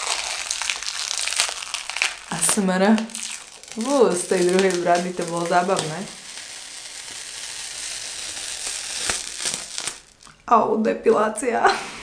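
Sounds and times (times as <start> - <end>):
face mask film peeling off: 0.0 - 10.4.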